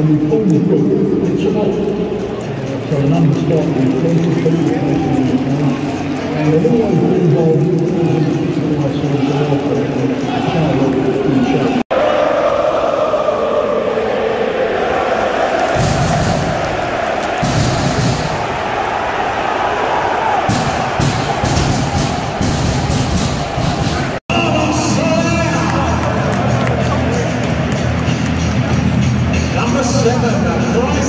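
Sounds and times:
music over stadium speakers: 0.0 - 11.8, 15.5 - 19.5, 20.2 - 31.0
crowd cheering: 2.4 - 31.0
crowd singing along: 11.4 - 19.0.

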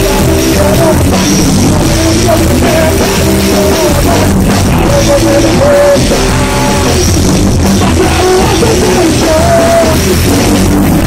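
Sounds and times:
drum kit with cymbals: 0.0 - 11.0
electric guitars: 0.0 - 11.0.

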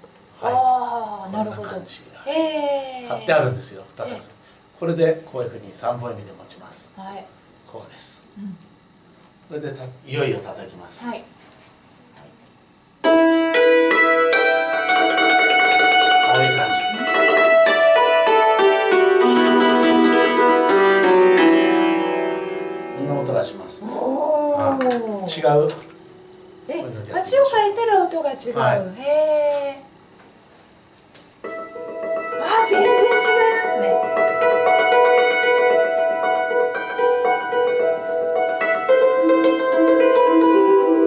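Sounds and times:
hammered dulcimer notes: 13.0 - 23.6, 31.5 - 41.0.

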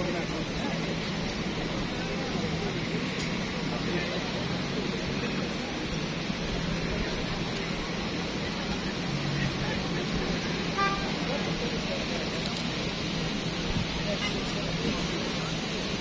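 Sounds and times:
pedestrians chattering: 0.0 - 16.0
steady traffic noise: 0.0 - 16.0.

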